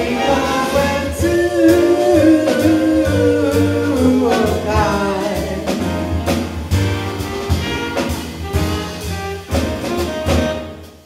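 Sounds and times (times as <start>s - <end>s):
jazz combo playing: 0.0s - 11.0s.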